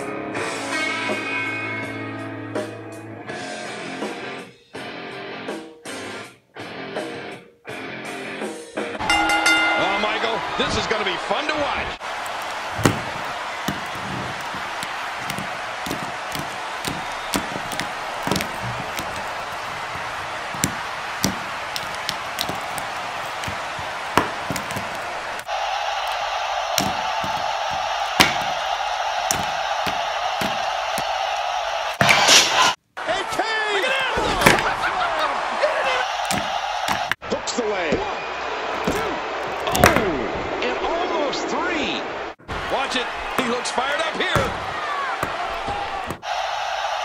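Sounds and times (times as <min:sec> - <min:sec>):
plastic figures knocking on tabletop: 0:12.2 - 0:25.5, 0:26.8 - 0:28.7, 0:29.3 - 0:31.1, 0:36.2 - 0:37.2, 0:38.8 - 0:40.1, 0:45.2 - 0:46.3.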